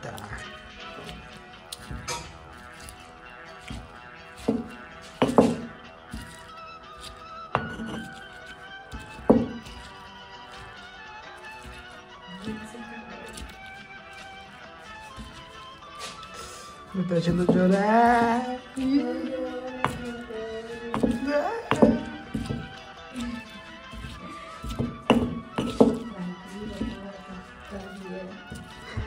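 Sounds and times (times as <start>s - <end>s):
stone pestle pounding: 0.0s - 16.4s, 17.0s - 29.0s
background music with held notes: 0.0s - 29.0s.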